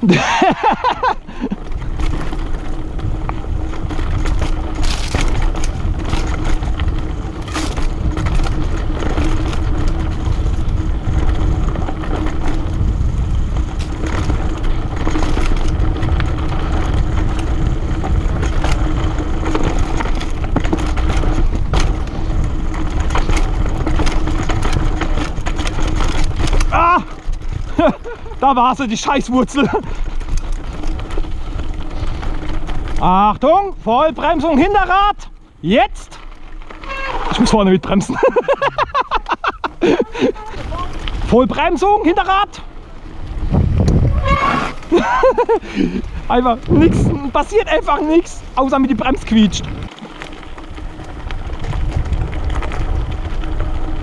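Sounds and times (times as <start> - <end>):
bike tyres on dirt and leaves: 0.0 - 54.0
bike knocking over bumps: 0.2 - 28.5
wind on microphone: 43.2 - 47.4, 49.3 - 50.1, 51.0 - 54.0.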